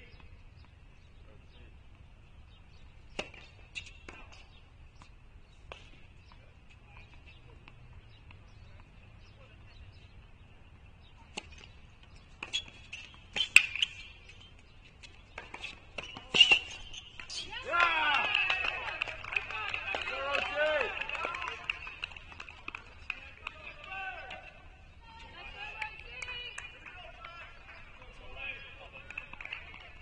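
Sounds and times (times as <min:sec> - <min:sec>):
racket hitting tennis ball: 0:03.1 - 0:04.4, 0:15.0 - 0:17.4.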